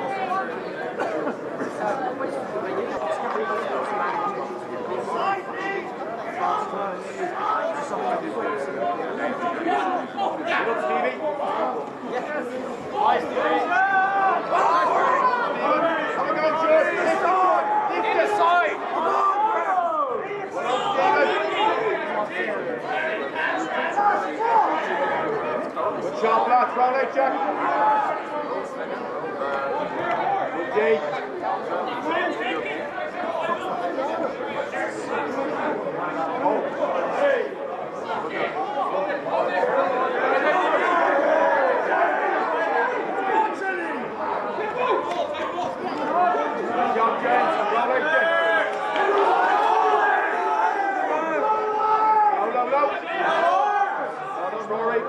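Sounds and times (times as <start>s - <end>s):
crowd shouting: 0.0s - 55.0s.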